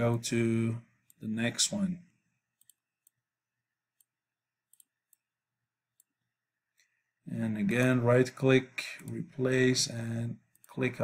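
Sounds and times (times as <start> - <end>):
computer mouse clicks: 2.6 - 3.2, 4.7 - 5.3.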